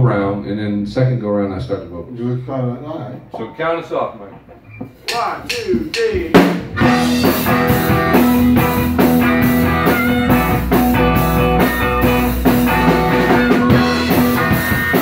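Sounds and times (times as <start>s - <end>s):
drum kit beat: 4.6s - 15.0s
electric guitar: 6.6s - 15.0s
harmonica: 6.8s - 15.0s.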